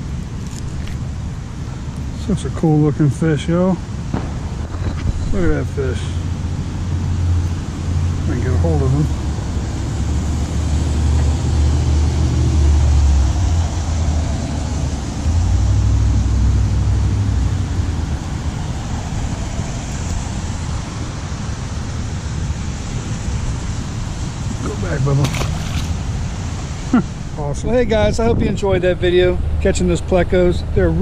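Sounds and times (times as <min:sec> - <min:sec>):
wind buffeting microphone: 0:00.0 - 0:31.0
fish splashing into water: 0:24.6 - 0:26.6.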